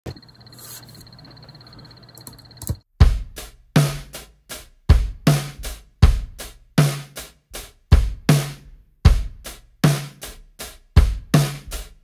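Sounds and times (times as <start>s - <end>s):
click: 2.1s - 2.8s.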